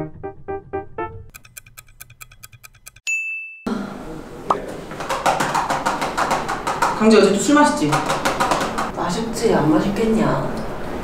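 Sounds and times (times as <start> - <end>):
clock ticking: 1.3 - 3.1
high bell ding: 3.0 - 3.7.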